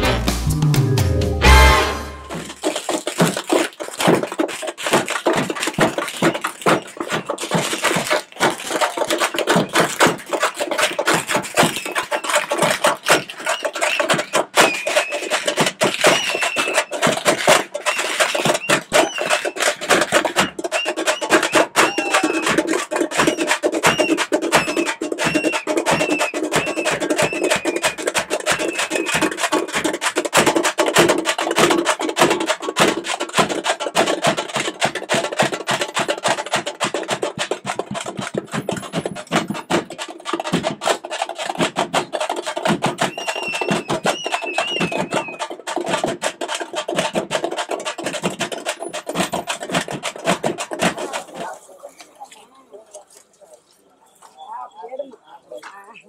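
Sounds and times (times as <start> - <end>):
frame drums beaten with sticks: 0.0 - 51.6.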